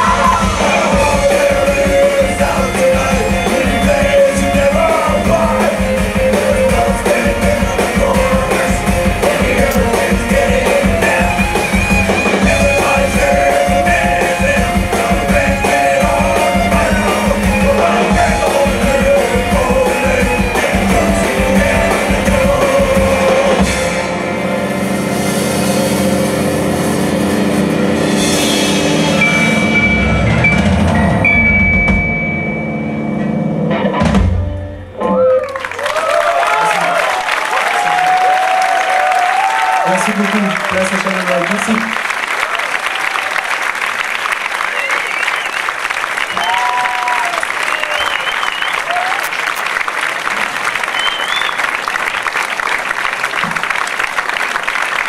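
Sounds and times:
cheering shouts and whistles: 0.0 - 0.9, 35.0 - 40.2, 44.6 - 49.6, 50.8 - 52.3
live rock band playing: 0.0 - 35.7
audience applauding: 35.2 - 55.0.

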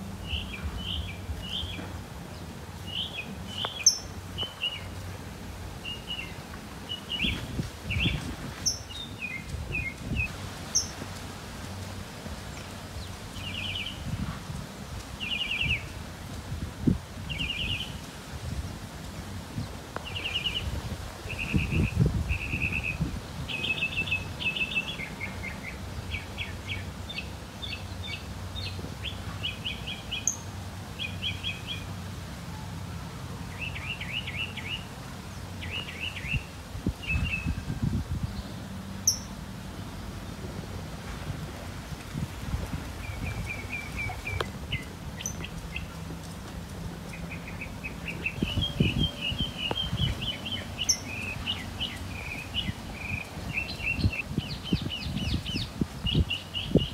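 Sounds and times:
songbird chirping: 0.0 - 16.1, 19.6 - 56.9.

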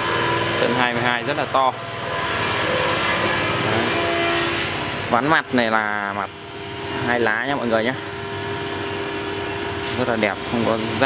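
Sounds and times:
motor humming: 0.0 - 11.0.

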